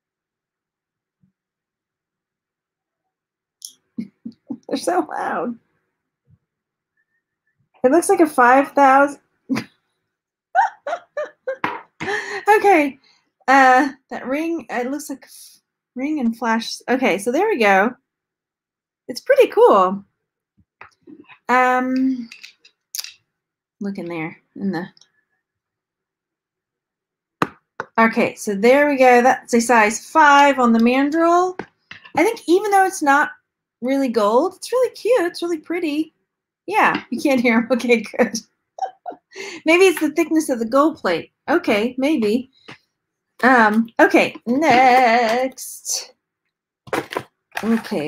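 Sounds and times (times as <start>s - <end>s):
woman starting to laugh: 10.6s - 12.4s.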